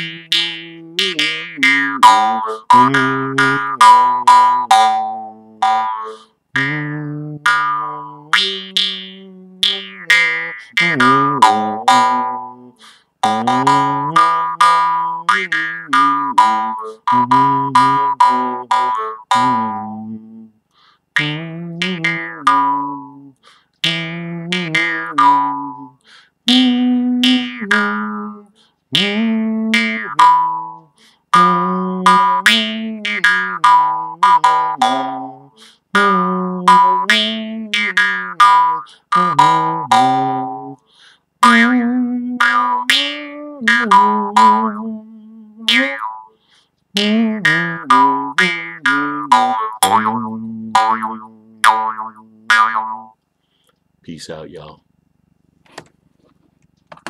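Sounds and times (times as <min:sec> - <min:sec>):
jaw harp twanging: 0:00.0 - 0:20.4, 0:21.2 - 0:25.9, 0:29.0 - 0:40.8, 0:41.4 - 0:45.0, 0:45.7 - 0:46.3, 0:47.0 - 0:53.2.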